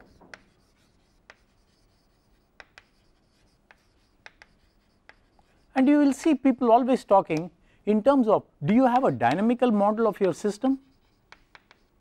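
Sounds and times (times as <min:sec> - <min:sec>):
chalk tapping and scratching on board: 0:00.0 - 0:06.2, 0:08.8 - 0:12.0.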